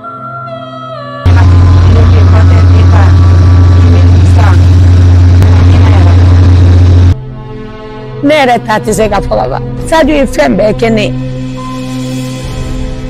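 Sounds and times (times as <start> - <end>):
woman talking into a radio: 1.3 - 4.8, 5.4 - 6.6
machine cab rumble: 1.3 - 7.2
background music: 5.3 - 13.0.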